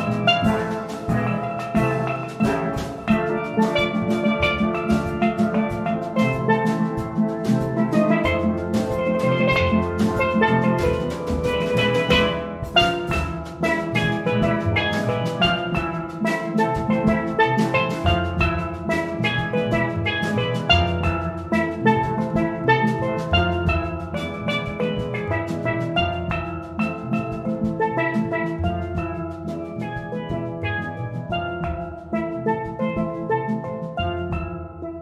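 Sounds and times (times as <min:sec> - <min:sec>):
drum kit: 0:00.0 - 0:35.0
low bass pan notes: 0:00.0 - 0:35.0
steel pans playing melody: 0:00.0 - 0:35.0.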